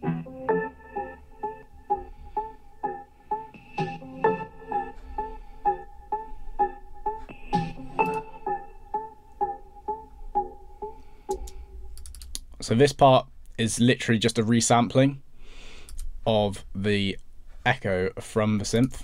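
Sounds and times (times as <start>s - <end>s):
arpeggiated synth with echo: 0.0s - 11.9s.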